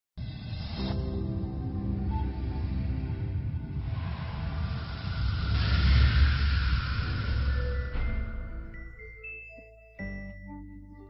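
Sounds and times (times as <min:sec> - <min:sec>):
deep rumble with rushing hiss: 0:02.0 - 0:08.6.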